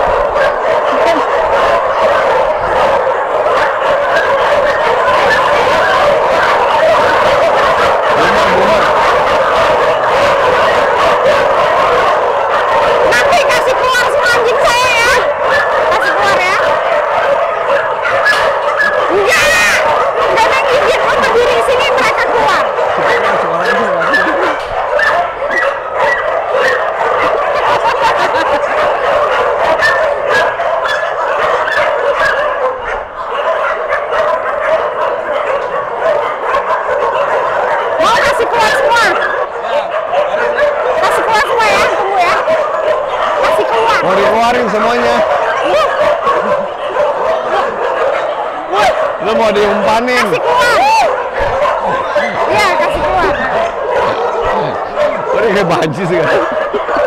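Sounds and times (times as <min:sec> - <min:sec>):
many dogs barking: 0:00.0 - 0:57.0.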